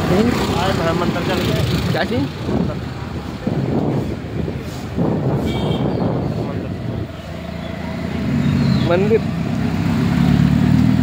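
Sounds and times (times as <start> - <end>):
street traffic: 0.0 - 11.0.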